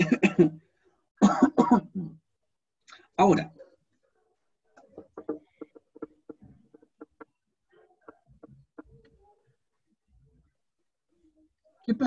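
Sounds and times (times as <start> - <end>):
man coughing: 0.0 - 0.6, 1.2 - 2.2.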